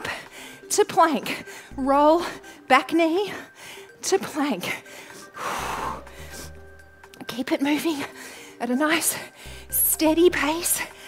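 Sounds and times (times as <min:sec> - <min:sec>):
background music with bass: 0:01.7 - 0:02.6, 0:05.4 - 0:07.2, 0:09.5 - 0:11.0
woman exhaling forcefully: 0:05.4 - 0:06.7.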